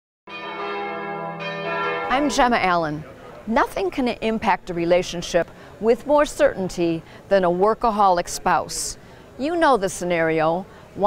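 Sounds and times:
bell-like chime chord: 0.3s - 2.5s.

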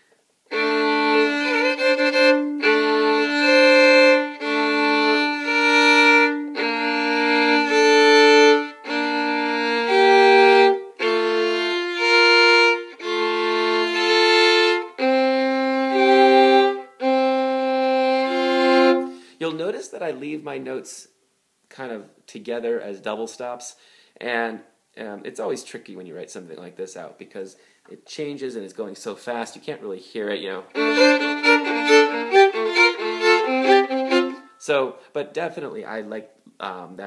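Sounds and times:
solo violin double stops: 0.5s - 19.2s, 30.7s - 34.6s.

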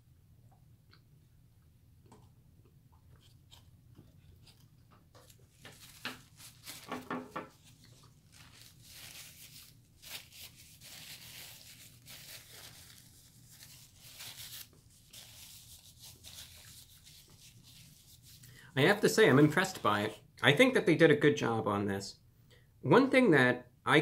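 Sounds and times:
paper napkin rustling and crinkling: 5.2s - 20.2s.

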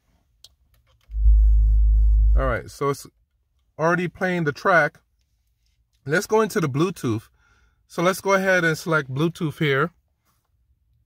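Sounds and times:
deep held bass note: 1.1s - 2.6s.

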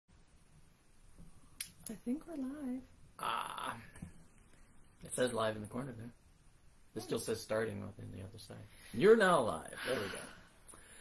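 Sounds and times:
man speaking: 7.0s - 10.4s.

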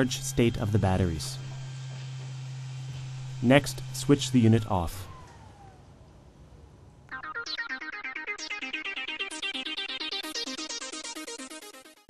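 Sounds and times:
blower motor whine spinning down: 0.0s - 11.3s.

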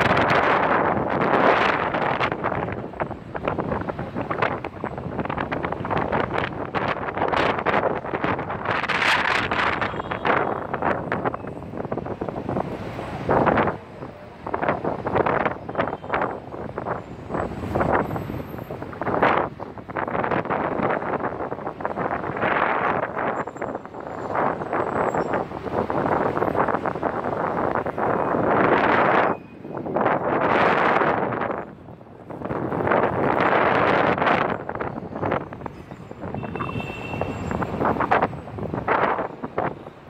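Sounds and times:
city street traffic: 0.0s - 40.0s
wind buffeting microphone: 0.0s - 40.0s.

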